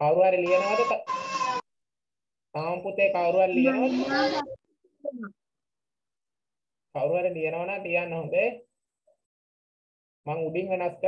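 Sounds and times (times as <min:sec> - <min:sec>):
speech over video call: 0:00.0 - 0:01.6, 0:02.5 - 0:05.3, 0:06.9 - 0:09.3, 0:10.2 - 0:11.0.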